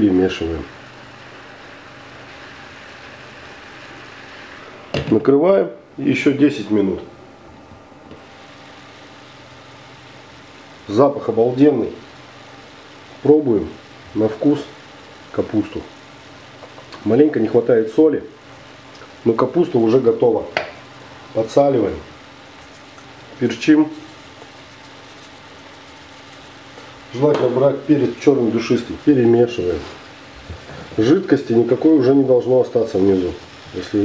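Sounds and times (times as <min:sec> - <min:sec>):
faint even hiss: 0:00.0 - 0:34.0
steady low hum: 0:00.0 - 0:34.0
cabbage cooking in a pan: 0:00.7 - 0:04.9, 0:22.1 - 0:34.0.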